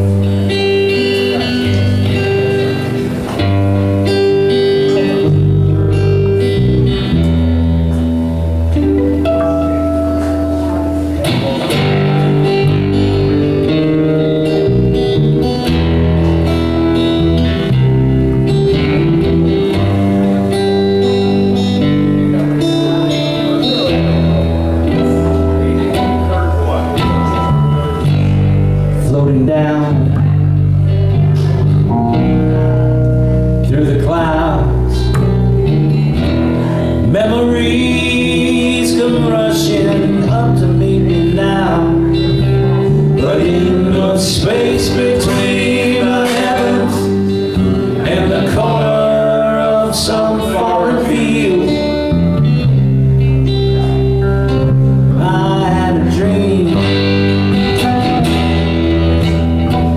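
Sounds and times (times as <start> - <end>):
acoustic guitar: 0.0 - 59.9
bass line: 0.0 - 59.9
second guitar: 0.0 - 59.9.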